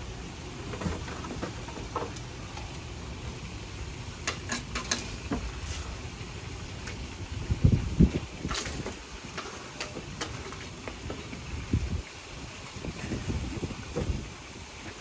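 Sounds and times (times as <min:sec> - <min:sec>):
wind buffeting microphone: 0:07.2 - 0:09.4, 0:10.9 - 0:15.0.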